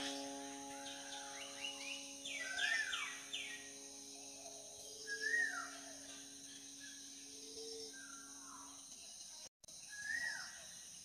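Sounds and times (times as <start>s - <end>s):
held musical chord: 0.0s - 8.7s
birds chirping: 0.0s - 9.3s
insect hiss: 0.0s - 11.0s.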